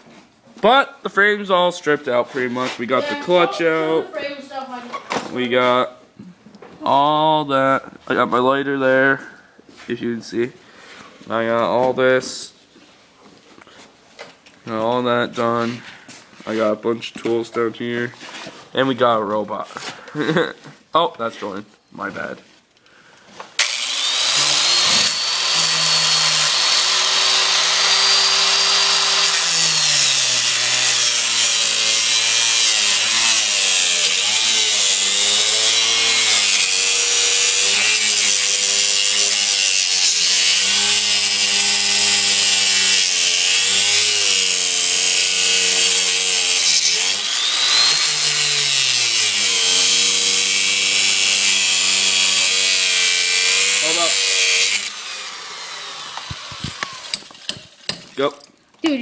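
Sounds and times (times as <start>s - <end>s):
angle grinder cutting steel chain: 23.6s - 58.4s.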